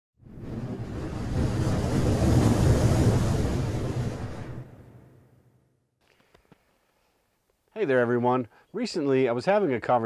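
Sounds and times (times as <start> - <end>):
rumbling whoosh: 0.2 - 5.5.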